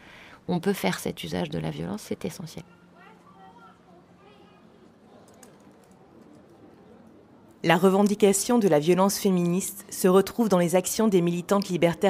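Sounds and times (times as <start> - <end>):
faint voice: 2.6 - 5.4
faint clicks: 5.2 - 6.6.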